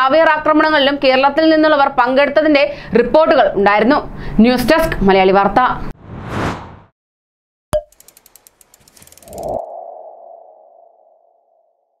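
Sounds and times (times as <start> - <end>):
rising whoosh: 6.0 - 6.9
run of clicks: 7.8 - 9.6.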